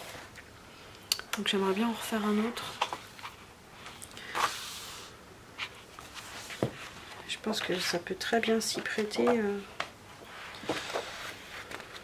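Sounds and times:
paper pages turning: 10.6 - 12.0.

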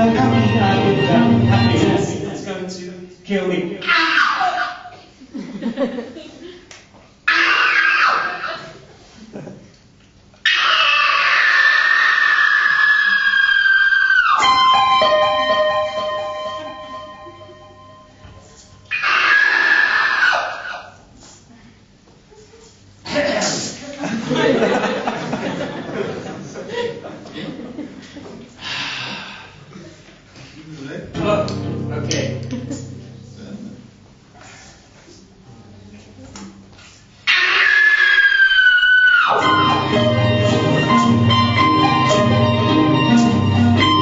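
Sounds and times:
bass line: 0.0 - 2.4, 31.2 - 34.0, 39.4 - 44.0
man screaming into microphone: 3.8 - 4.9, 7.3 - 8.7, 10.5 - 14.4, 18.9 - 20.8, 37.3 - 39.5
electric guitar with effects: 31.2 - 33.4, 39.4 - 44.0.

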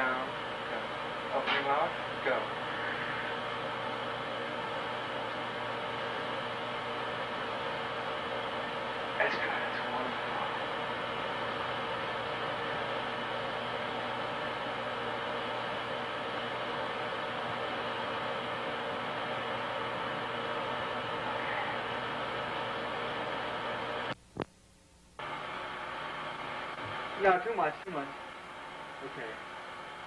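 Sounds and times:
steady hiss and hum: 0.0 - 30.0.

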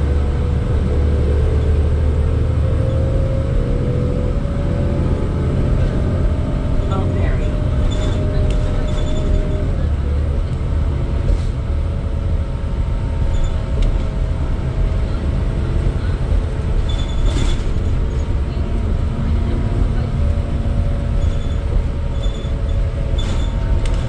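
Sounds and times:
bus engine rumble: 0.0 - 24.0
road noise: 0.0 - 24.0.

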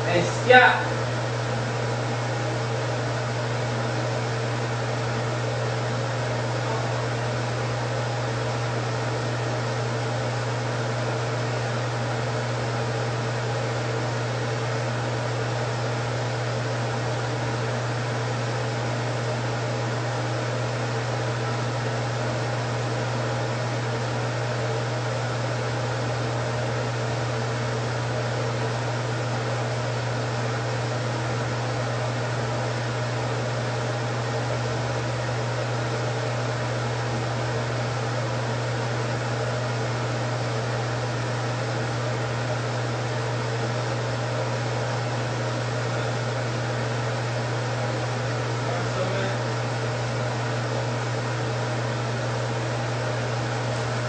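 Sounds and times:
fan motor hum: 0.0 - 54.0.

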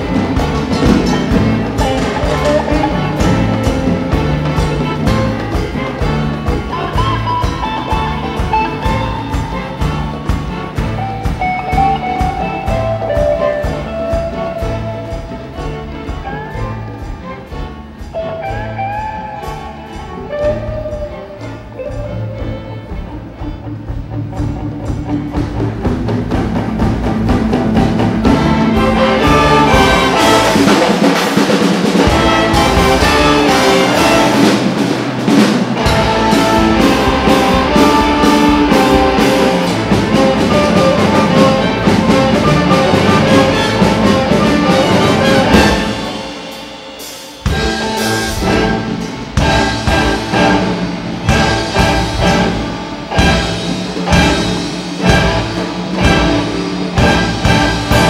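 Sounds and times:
orchestra and band playing: 0.0 - 58.0.

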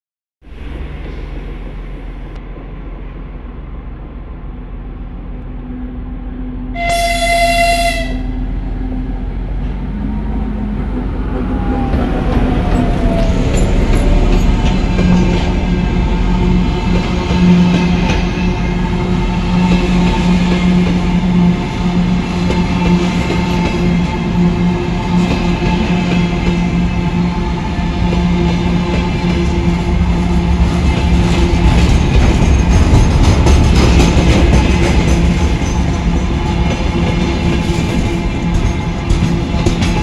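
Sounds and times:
diesel locomotive engine droning: 0.4 - 40.0
locomotive horn blast: 6.4 - 8.4.

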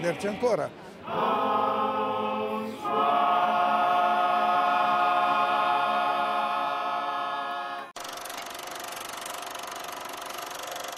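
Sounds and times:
film projector clatter: 8.0 - 10.9.

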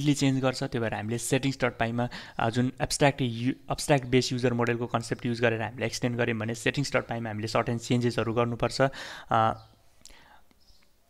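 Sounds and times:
man speaking: 0.0 - 9.7
soft breathy sound: 2.1 - 2.4, 8.9 - 10.7.

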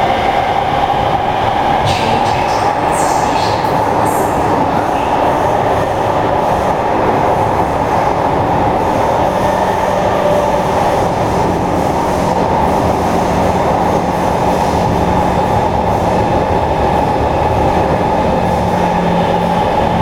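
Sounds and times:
train wheels roaring on rail: 0.0 - 20.0.

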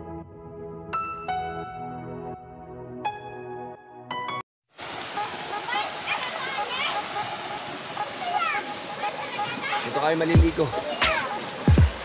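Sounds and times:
water rushing down rock cascade: 4.8 - 12.0.

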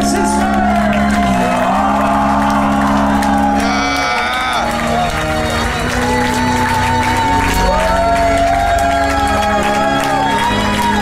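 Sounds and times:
crowd cheering and shouting: 0.0 - 11.0.

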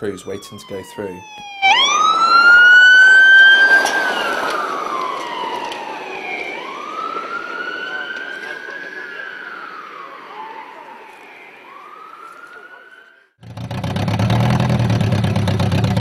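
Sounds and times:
emergency vehicle siren wailing: 0.0 - 13.4.

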